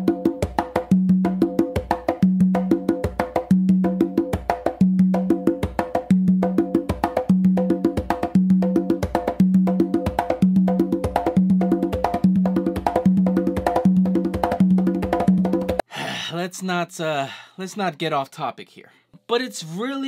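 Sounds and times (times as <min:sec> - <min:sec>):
congas playing: 0:00.0 - 0:15.8.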